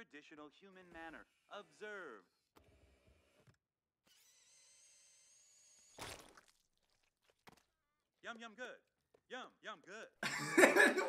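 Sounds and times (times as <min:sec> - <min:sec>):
wet splat: 0:06.0 - 0:07.6.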